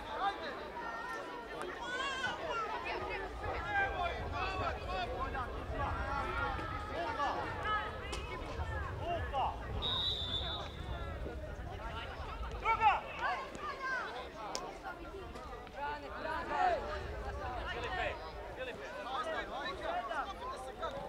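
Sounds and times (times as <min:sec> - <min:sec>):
people calling and shouting: 0:00.0 - 0:21.0
high whistle: 0:09.8 - 0:10.9.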